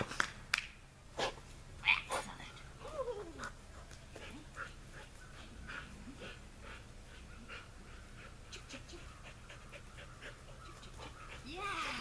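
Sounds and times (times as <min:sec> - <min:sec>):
dog panting: 0:03.7 - 0:12.0.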